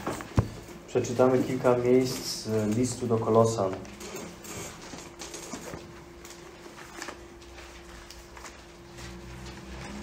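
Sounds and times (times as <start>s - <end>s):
soft handling clicks and rustles: 0.0s - 10.0s.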